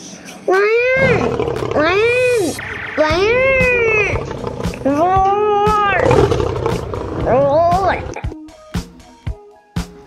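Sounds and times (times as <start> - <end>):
lion roaring: 0.8 - 8.2.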